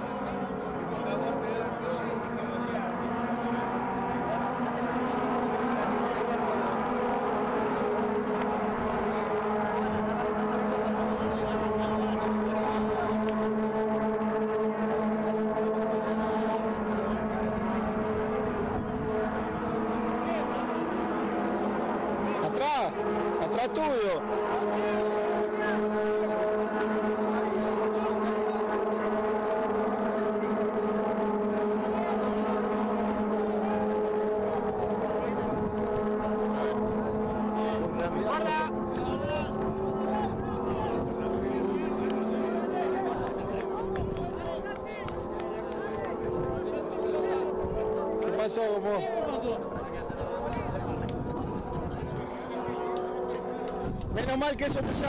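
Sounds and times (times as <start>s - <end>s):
people talking: 0.0s - 14.2s, 15.2s - 28.9s, 31.4s - 55.0s
steady engine drone: 0.0s - 55.0s.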